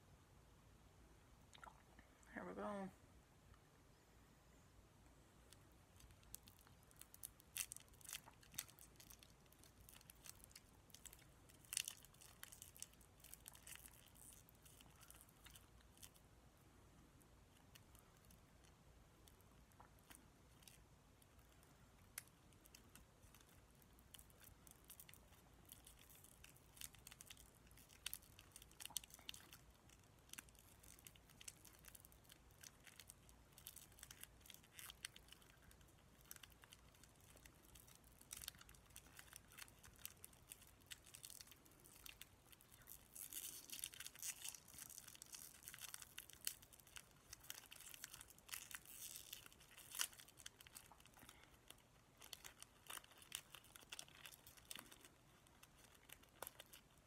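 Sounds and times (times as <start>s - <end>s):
wrapper crinkling: 6.0s - 16.2s, 19.2s - 57.0s.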